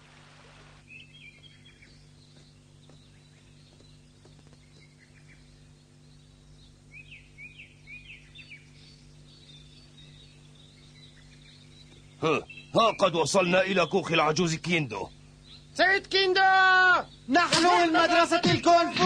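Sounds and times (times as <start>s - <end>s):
birds chirping: 0.0s - 19.0s
steady low hum: 0.0s - 19.0s.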